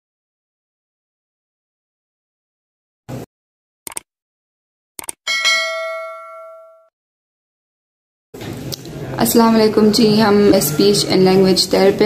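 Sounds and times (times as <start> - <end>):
quick clicks: 3.9 - 4.1, 5.0 - 5.2
bell ding: 5.3 - 6.9.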